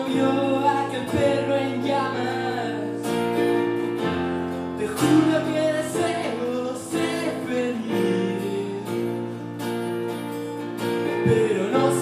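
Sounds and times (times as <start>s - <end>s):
acoustic guitar: 0.0s - 12.0s.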